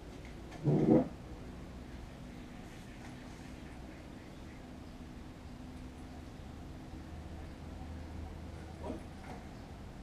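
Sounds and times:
wooden chair scraping on floor: 0.5 - 1.1.

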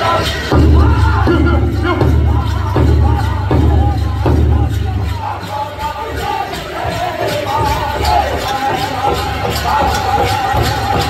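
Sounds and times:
big drum beating: 0.0 - 11.0
crowd noise in a hall: 0.0 - 11.0
high wavering group singing: 0.0 - 11.0.

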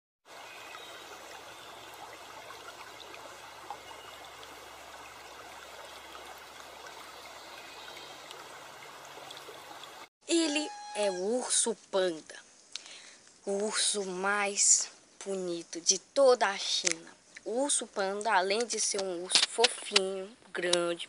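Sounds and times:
stream babbling over rocks: 0.3 - 10.1.

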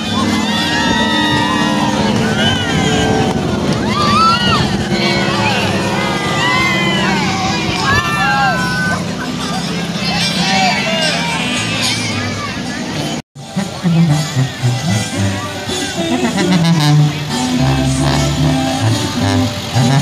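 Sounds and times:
crowd talking and calling out: 0.0 - 20.0.

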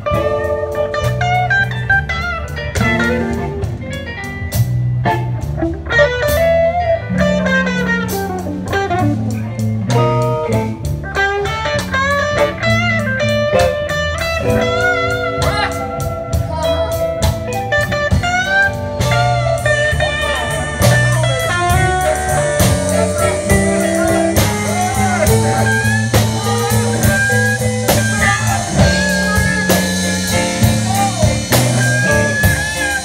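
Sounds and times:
bass line: 0.0 - 33.0
drum kit: 0.0 - 33.0
electric guitar lead lines: 0.0 - 33.0.

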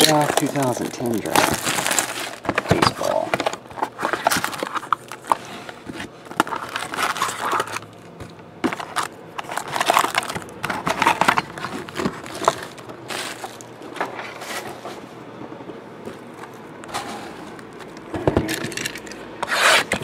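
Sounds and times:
foil packs crinkling: 0.0 - 14.9
cardboard clicks and scrapes: 19.4 - 20.0.

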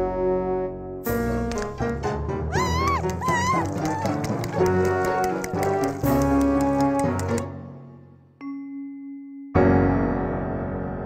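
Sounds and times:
cartoon background music: 0.0 - 10.9
high-pitched character cries: 2.5 - 4.2.

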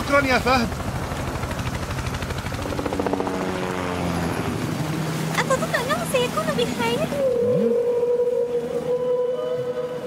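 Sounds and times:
low rising whale call: 7.1 - 10.0
killer whale whistle call: 7.2 - 10.0.

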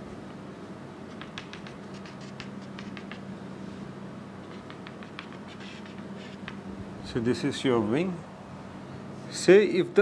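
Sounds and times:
low room hum: 0.0 - 10.0
chalk tapping on chalkboard: 1.1 - 3.3, 4.4 - 6.6.

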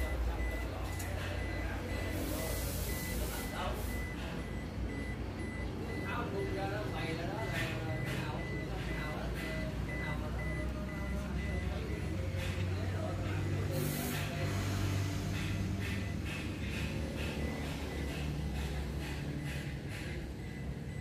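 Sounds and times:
electronic warning beeps: 0.0 - 21.0
faint voices: 0.0 - 21.0.

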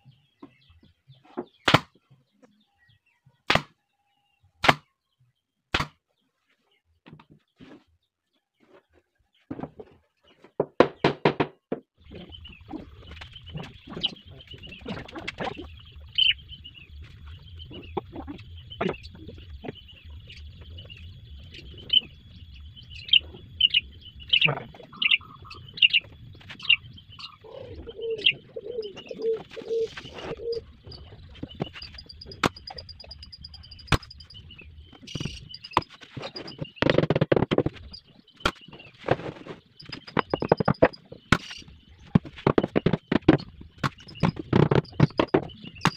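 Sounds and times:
birds chirping: 0.0 - 45.9
dove cooing: 26.7 - 33.9
scattered knocks: 35.0 - 38.6, 39.8 - 45.9.

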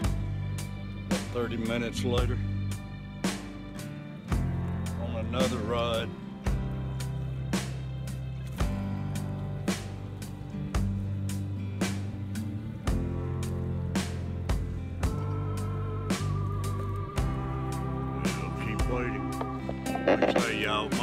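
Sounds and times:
background music with steady beat: 0.0 - 21.0
wavering melody line: 18.2 - 21.0.

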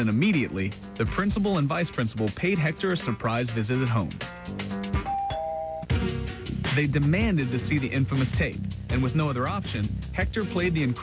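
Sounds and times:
background music: 0.0 - 11.0
two-note doorbell chime: 5.0 - 5.9.

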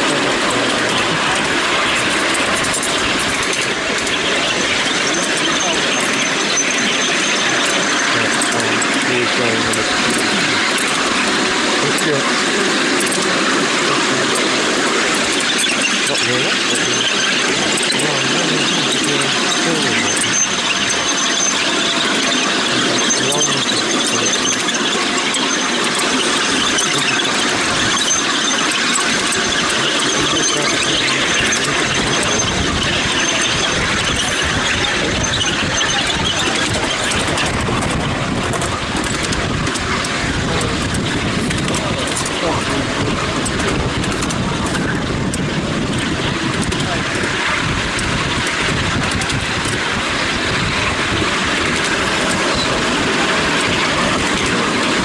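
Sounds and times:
miniature train wheels rolling on rails: 0.0 - 55.0.

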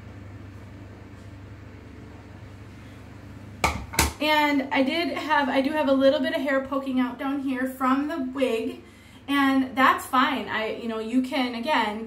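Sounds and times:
low room hum: 0.0 - 12.0
sharp knock: 3.6 - 4.2.

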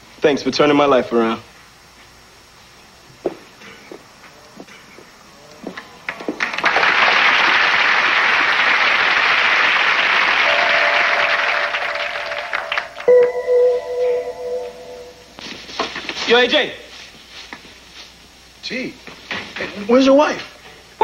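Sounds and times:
studio audience applauding: 6.4 - 13.2
short music cue: 10.5 - 15.4.

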